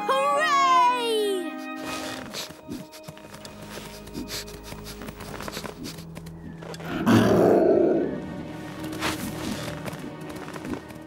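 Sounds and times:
big cat growl: 0:06.8 - 0:08.2.

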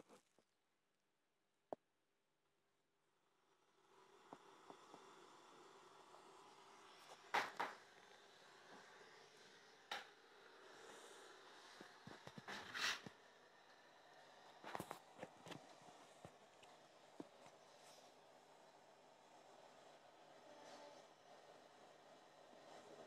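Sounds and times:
faint hiss: 0:03.0 - 0:23.0.

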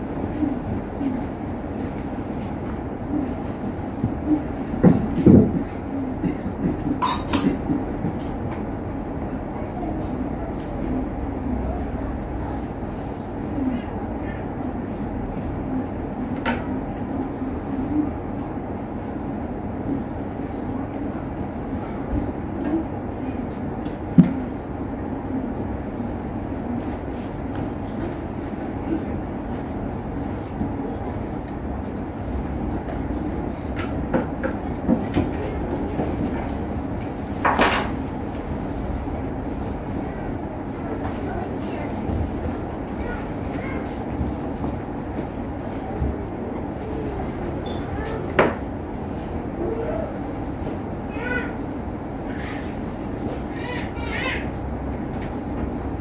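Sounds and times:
low room rumble: 0:00.0 - 0:56.0.

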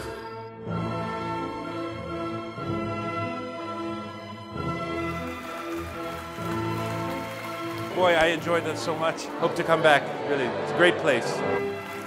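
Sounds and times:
orchestral music sustained chords: 0:00.9 - 0:12.0
audience applause: 0:04.8 - 0:10.1, 0:11.6 - 0:12.0.

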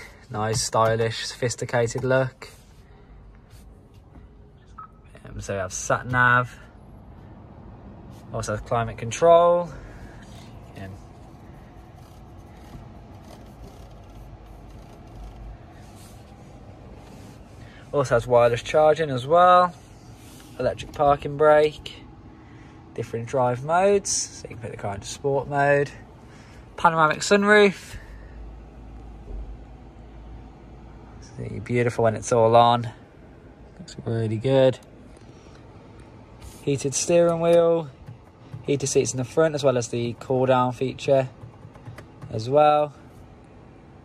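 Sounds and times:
climate control fan blowing: 0:00.0 - 0:44.0
low rumble inside car: 0:00.0 - 0:44.0.

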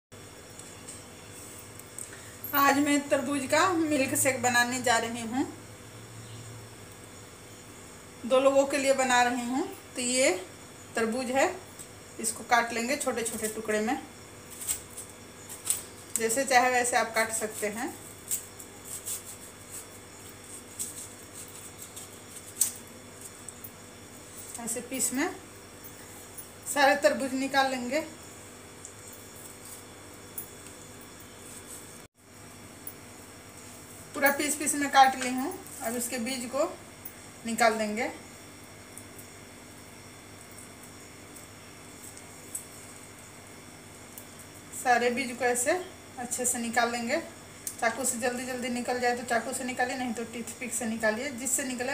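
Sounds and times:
low hum and hiss: 0:00.1 - 0:51.9.

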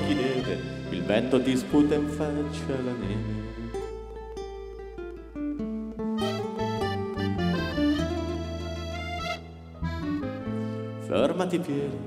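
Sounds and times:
bright melody line: 0:00.0 - 0:05.2, 0:05.9 - 0:11.0
steady low bass: 0:00.0 - 0:11.1
acoustic guitar: 0:00.0 - 0:12.0.

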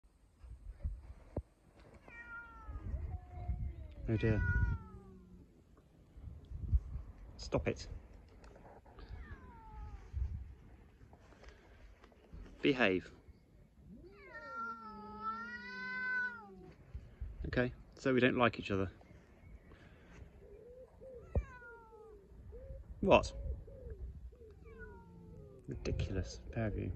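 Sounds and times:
cat yowling: 0:02.1 - 0:05.4, 0:09.0 - 0:10.1, 0:13.9 - 0:16.7, 0:21.1 - 0:22.4, 0:24.4 - 0:25.7.

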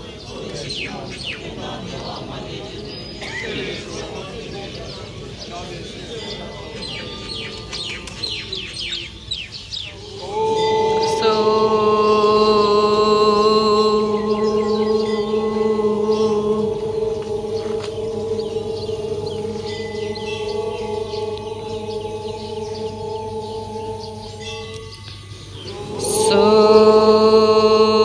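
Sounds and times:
birds chirping faintly: 0:00.0 - 0:28.0
group chanting a prayer: 0:00.0 - 0:28.0.

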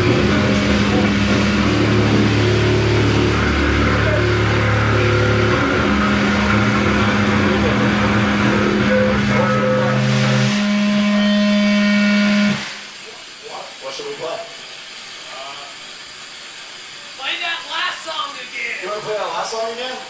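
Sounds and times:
guitar amplifier feedback: 0:00.0 - 0:13.0.

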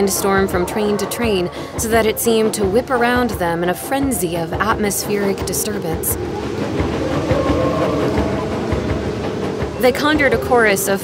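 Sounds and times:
layered music: 0:00.0 - 0:11.0
rumbling train-like noise: 0:00.0 - 0:11.0.

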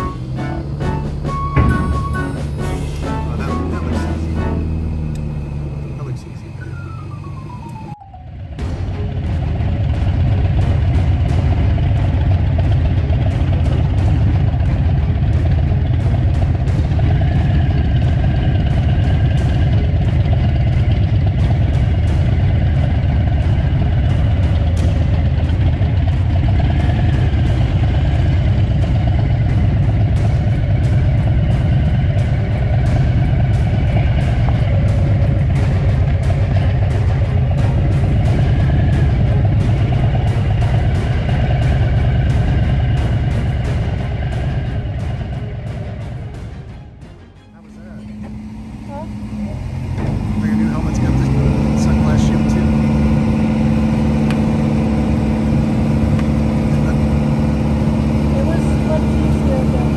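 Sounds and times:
motorcycle engine idling: 0:00.0 - 0:47.0, 0:47.6 - 0:59.9.

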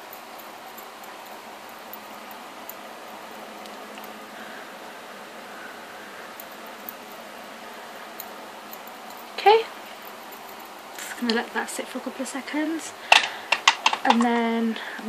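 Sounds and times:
microphone hiss: 0:00.0 - 0:15.0.

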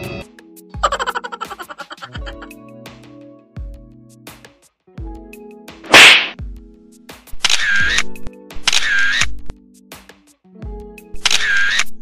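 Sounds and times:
background music with low beats: 0:00.0 - 0:08.8, 0:09.4 - 0:11.2
sharp whip-like crack: 0:05.8 - 0:06.4.

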